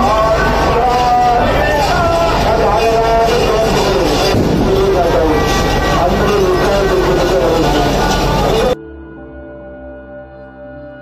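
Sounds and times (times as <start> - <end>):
many voices: 0.0 - 11.0.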